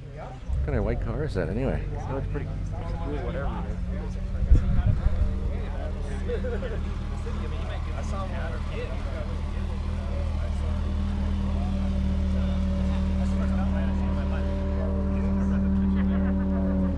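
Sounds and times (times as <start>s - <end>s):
people talking: 0.0s - 16.9s
vehicle engine running at low revs: 0.0s - 16.9s.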